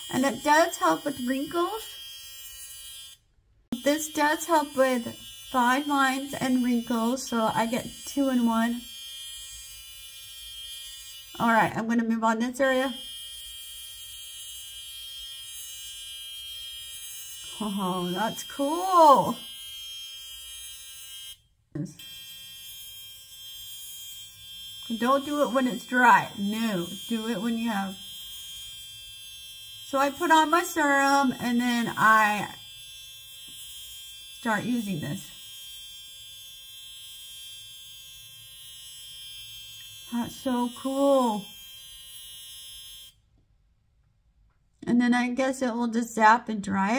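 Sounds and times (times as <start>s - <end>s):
high-pitched electric buzz: 3.8s - 11.7s, 12.8s - 43.2s.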